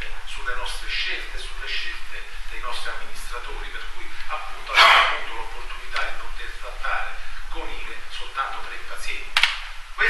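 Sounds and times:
man speaking into microphone: 0.0 - 9.4.

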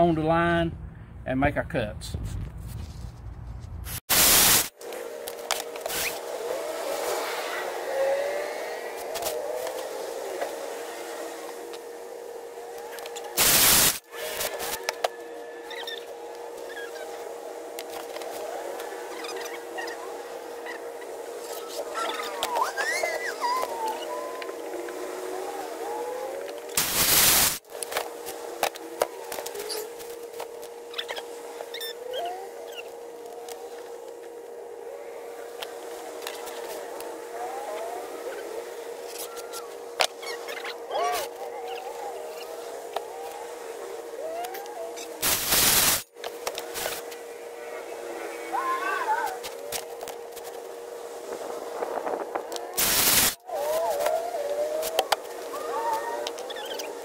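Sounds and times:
circular saw cutting plywood: 4.1 - 57.0
high-pitched chattering voices: 19.1 - 24.6.

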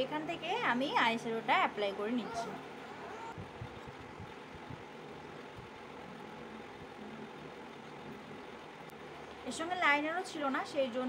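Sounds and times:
background rumble and hiss: 0.0 - 11.0.

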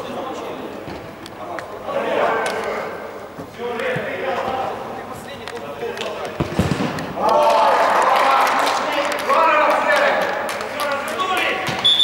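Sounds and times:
ball thudding in echoing hall: 6.0 - 7.6, 11.6 - 12.0.

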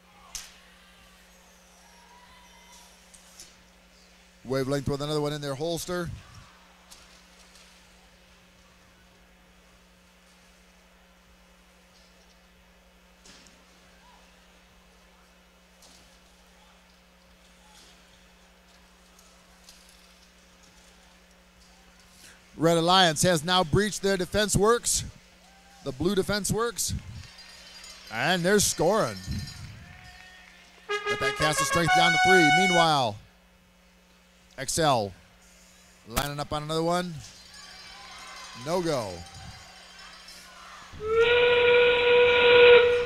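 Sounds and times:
faint arena background: 0.0 - 43.0
steady low hum: 2.9 - 30.0, 30.6 - 37.5.

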